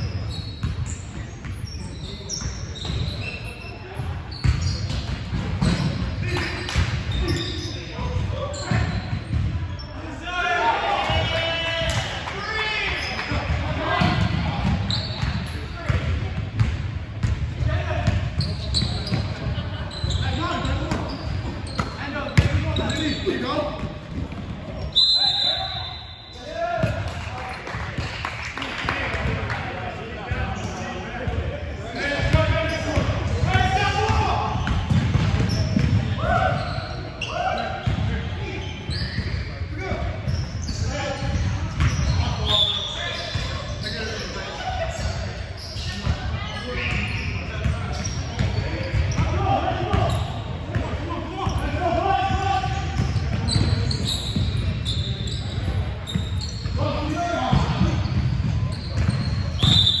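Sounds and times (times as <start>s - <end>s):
players calling out: 29.0s - 41.0s.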